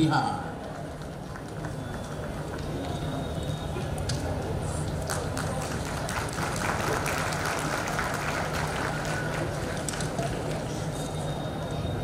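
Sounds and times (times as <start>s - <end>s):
audience applauding: 5.0s - 10.7s.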